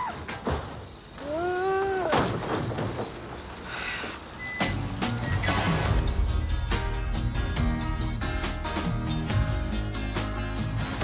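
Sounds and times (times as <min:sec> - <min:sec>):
truck rumbling: 0:00.0 - 0:11.0.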